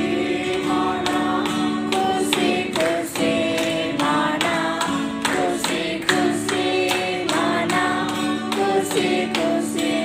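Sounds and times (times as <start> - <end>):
group singing together: 0.0 - 10.0
strummed acoustic guitar: 0.0 - 10.0.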